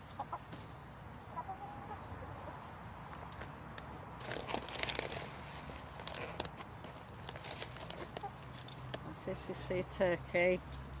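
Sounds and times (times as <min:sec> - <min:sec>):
hen clucking: 0:00.0 - 0:00.6, 0:01.2 - 0:02.3, 0:08.0 - 0:08.4
hens scratching and pecking: 0:00.0 - 0:11.0.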